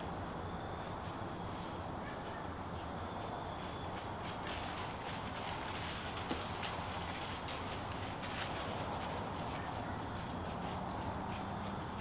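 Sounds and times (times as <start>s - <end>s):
low background noise: 0.0s - 12.0s
footsteps crunching in dry leaves: 0.4s - 12.0s.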